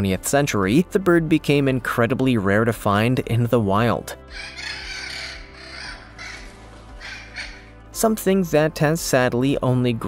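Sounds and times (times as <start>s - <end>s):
background music: 0.0s - 10.0s
macaws squawking: 4.3s - 7.9s.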